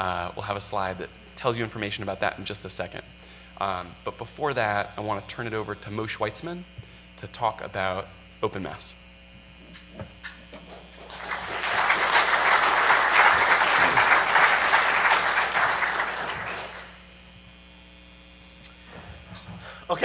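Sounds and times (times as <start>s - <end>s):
audience applauding: 11.0s - 17.0s.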